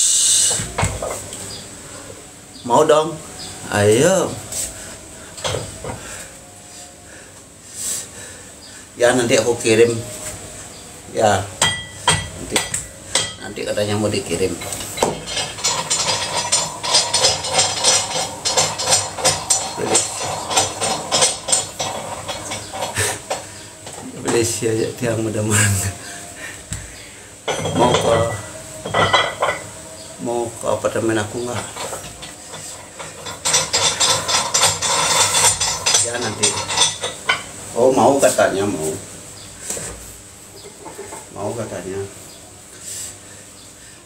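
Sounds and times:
metal gym equipment clattering: 0:11.6 - 0:25.0, 0:27.4 - 0:30.1, 0:30.7 - 0:38.2.

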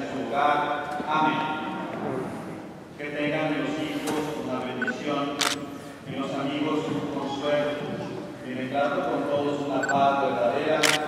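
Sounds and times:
camera shutter click: 0:05.4 - 0:05.6, 0:10.8 - 0:11.0.

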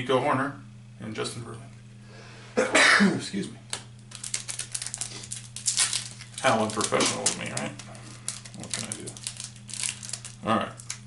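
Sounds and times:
wrapper crinkling: 0:03.7 - 0:11.0.

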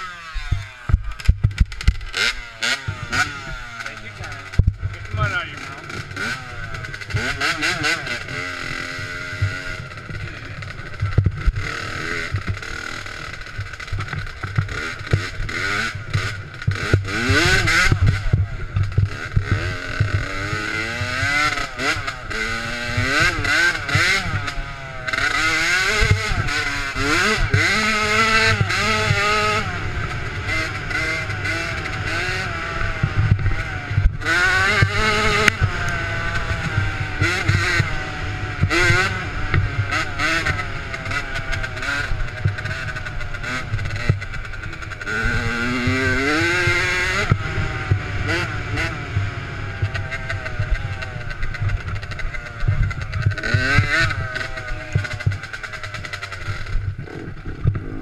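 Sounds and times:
dirt bike engine revving: 0:00.0 - 0:58.0.

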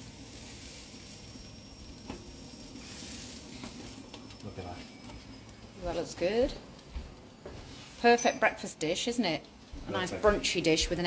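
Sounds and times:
bread rolls sizzling on a grill: 0:00.0 - 0:11.0.

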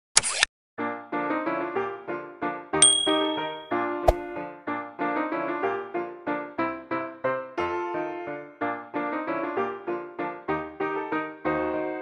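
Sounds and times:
bell-like ding: 0:02.8 - 0:03.8
keyboard chords: 0:02.8 - 0:03.8.

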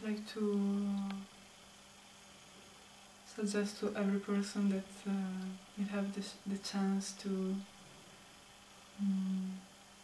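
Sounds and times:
faint room hiss: 0:00.0 - 0:10.0.

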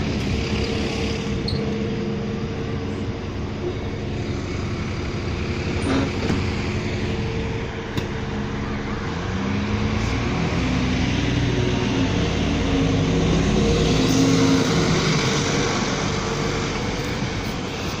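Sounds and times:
bus engine accelerating: 0:00.0 - 0:18.0.

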